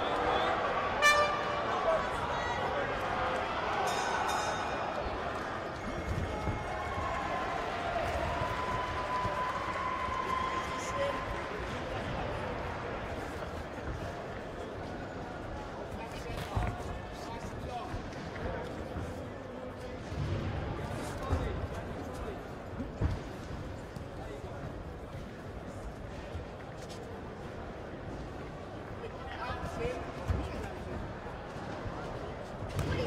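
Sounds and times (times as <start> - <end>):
crowd murmuring: 0.0 - 6.2
crowd voices and shouts: 0.0 - 33.0.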